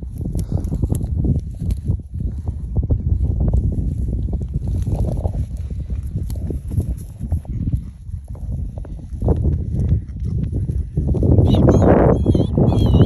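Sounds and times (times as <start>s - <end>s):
footsteps crunching on dry grass: 0.0s - 11.9s
wind rumble on microphone: 0.0s - 13.0s.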